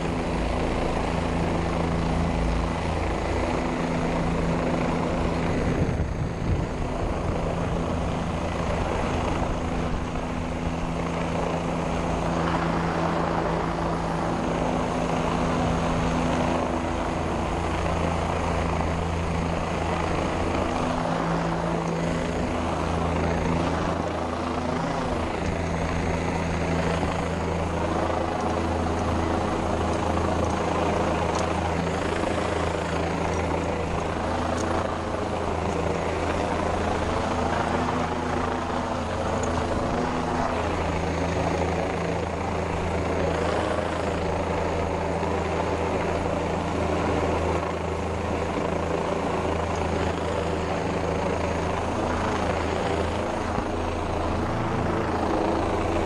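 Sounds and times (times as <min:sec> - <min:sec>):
helicopter hovering overhead: 0:00.0 - 0:56.0.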